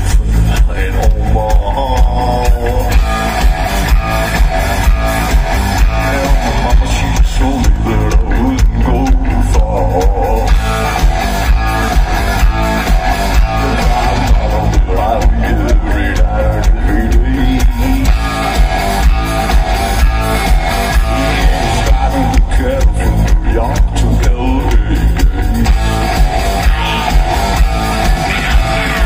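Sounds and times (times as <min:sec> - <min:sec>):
rock band playing live: 0:00.0 - 0:29.0.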